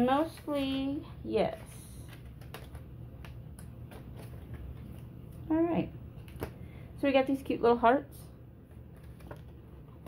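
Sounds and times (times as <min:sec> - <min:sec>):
steady low hum: 0:00.0 - 0:10.0
paper ticks and rustles: 0:02.0 - 0:05.1, 0:08.9 - 0:09.6.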